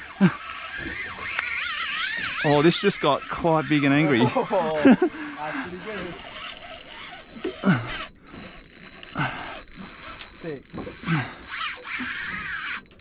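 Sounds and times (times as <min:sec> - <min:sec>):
fishing reel drag ratcheting buzz: 0:00.0 - 0:13.0.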